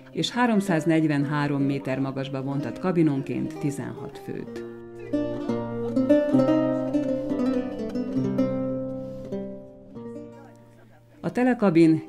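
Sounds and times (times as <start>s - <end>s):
plucked guitar music: 0.0s - 12.0s.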